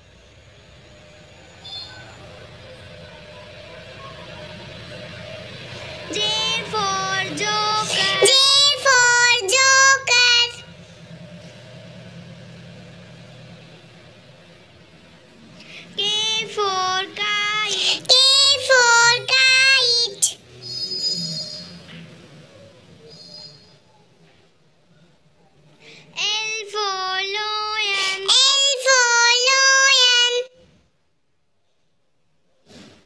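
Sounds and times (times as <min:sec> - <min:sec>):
child singing: 0:05.9 - 0:10.6, 0:16.0 - 0:20.4, 0:26.1 - 0:30.5.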